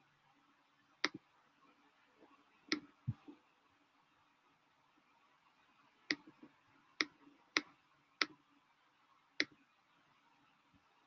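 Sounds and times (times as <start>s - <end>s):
computer mouse clicking: 7.0s - 8.4s.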